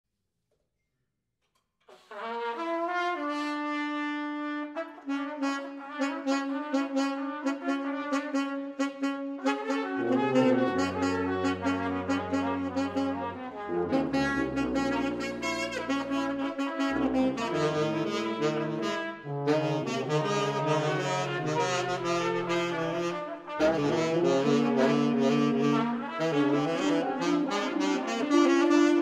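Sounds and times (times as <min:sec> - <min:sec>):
saxophone: 0:01.9 - 0:29.0
trumpet: 0:01.9 - 0:29.0
low tuba notes: 0:04.9 - 0:29.0.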